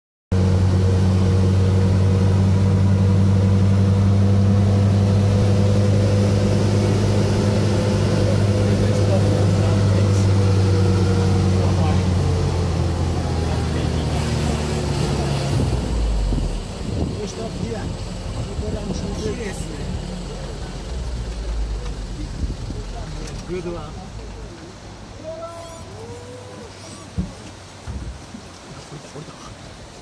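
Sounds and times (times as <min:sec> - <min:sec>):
vehicle engine droning: 0:00.3 - 0:27.9.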